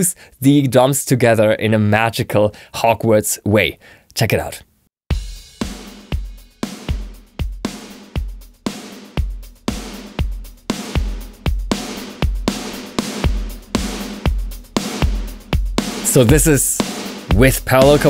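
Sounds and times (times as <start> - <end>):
drum kit playing steady beat: 5.1 - 18.0.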